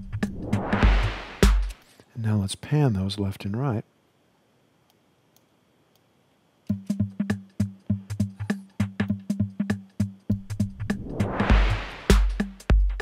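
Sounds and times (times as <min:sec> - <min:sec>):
drum-machine beat: 0:00.0 - 0:01.8, 0:06.7 - 0:13.0.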